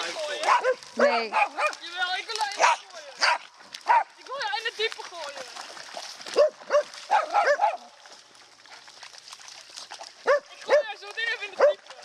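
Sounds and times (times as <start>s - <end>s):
dogs barking in high yaps: 0.4s - 1.8s, 2.6s - 4.1s, 6.3s - 7.9s, 10.2s - 10.9s, 11.6s - 11.8s.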